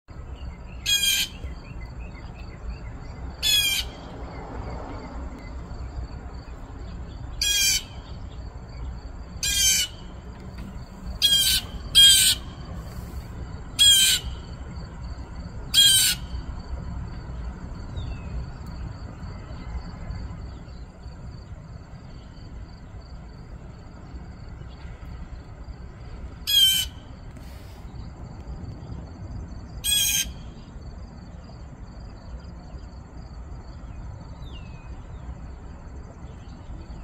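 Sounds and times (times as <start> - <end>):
blue jay alarm calls: 0.7 - 1.8, 3.4 - 4.1, 7.4 - 8.3, 9.4 - 10.2, 11.2 - 14.5, 15.7 - 16.4, 26.4 - 27.8, 29.8 - 30.5.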